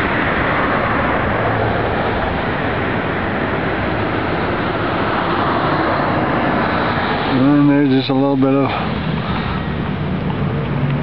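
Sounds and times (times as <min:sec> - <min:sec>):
cars driving past: 0:00.0 - 0:11.0.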